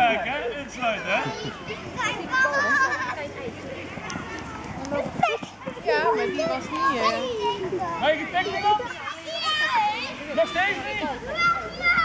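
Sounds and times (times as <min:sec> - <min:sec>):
children shouting and calling: 0:00.0 - 0:12.0.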